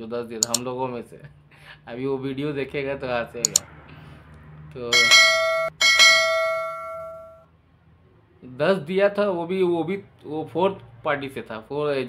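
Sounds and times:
bell ding: 5.0 - 7.4.

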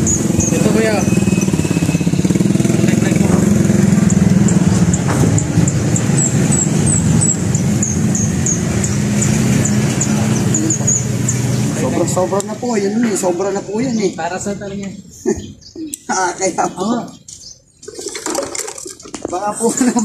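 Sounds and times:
bird chirping: 0.0 - 18.1.

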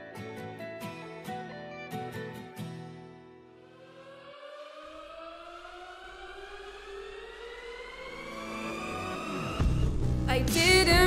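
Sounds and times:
electronic rising sweep: 3.6 - 10.2
music with heavy bass: 9.0 - 11.0.

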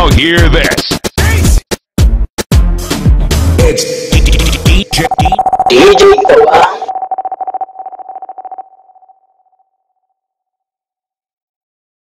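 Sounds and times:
steady beep-like tone: 3.7 - 9.6
rapid stuttering electronic pulses: 4.1 - 9.0.

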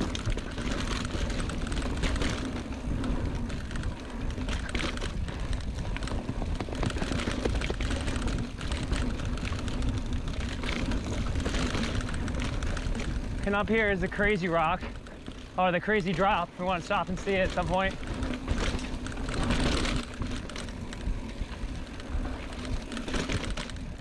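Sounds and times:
bike rattling over trail: 0.0 - 24.0
bike tyres on dirt: 0.0 - 24.0.

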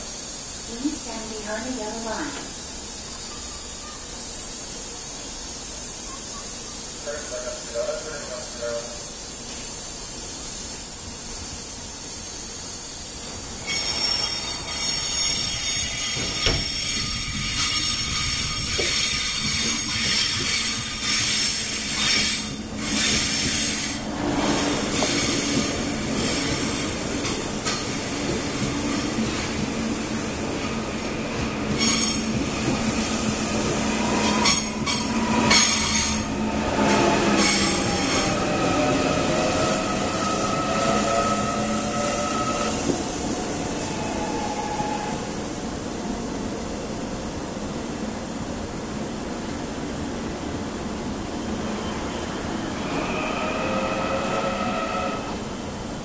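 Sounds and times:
train brake whine: 0.0 - 46.1, 51.4 - 56.0
train wheels squealing and rumbling: 13.4 - 45.9, 51.2 - 56.0
rail-joint clacks: 13.7 - 29.7.

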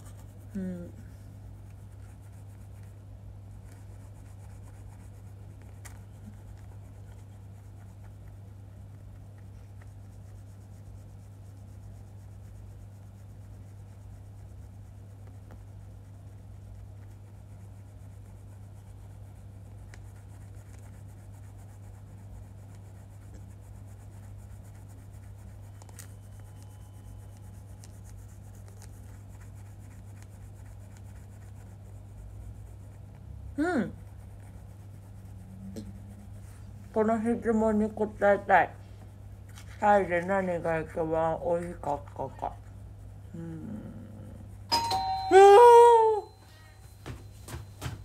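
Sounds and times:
low electrical hum: 0.0 - 48.0
toothbrush scrubbing teeth: 3.8 - 38.4
person humming briefly: 43.3 - 44.5, 45.3 - 46.8.

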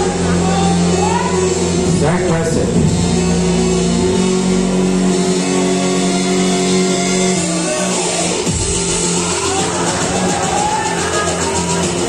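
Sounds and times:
music with long held notes: 0.0 - 12.0.

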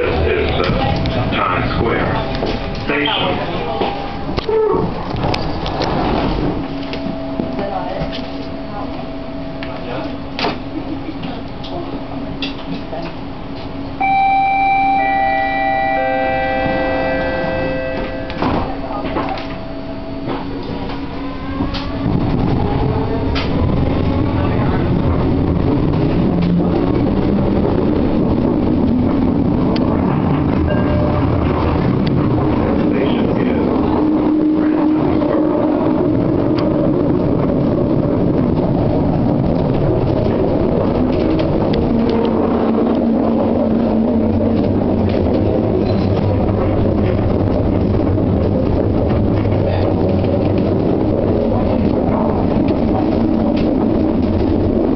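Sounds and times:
train running rumble: 0.0 - 54.9
descending three-note chime: 14.0 - 21.3.

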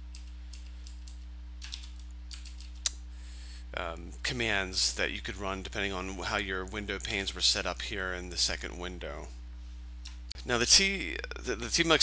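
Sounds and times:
computer keyboard keystrokes: 0.1 - 3.0.

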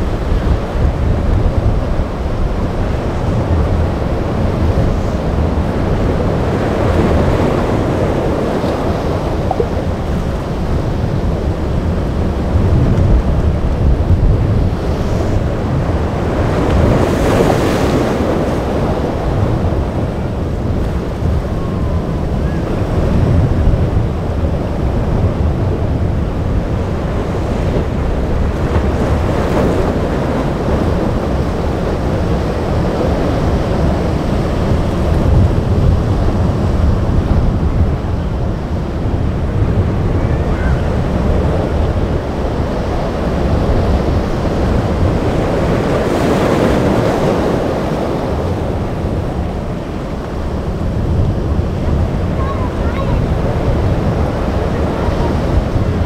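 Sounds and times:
surf breaking and rushing: 0.0 - 56.0
wind buffeting microphone: 0.0 - 56.0.

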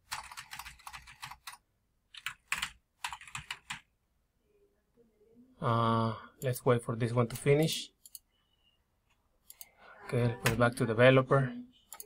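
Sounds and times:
typing on computer keyboard: 0.0 - 3.9.

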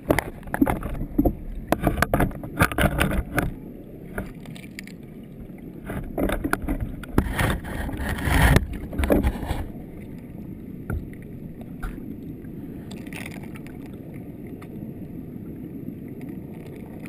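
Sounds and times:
river water churning underwater: 0.0 - 17.0.

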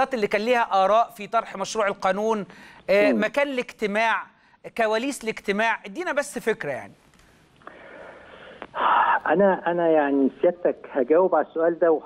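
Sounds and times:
man breathing over telephone: 7.6 - 9.1.

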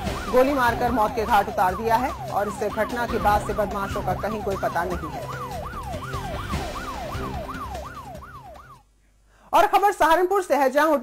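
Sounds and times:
police siren wailing: 0.0 - 8.8.

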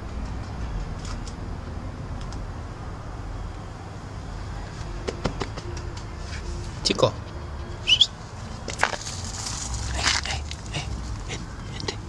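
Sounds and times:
distant road traffic rumble: 0.0 - 12.0.

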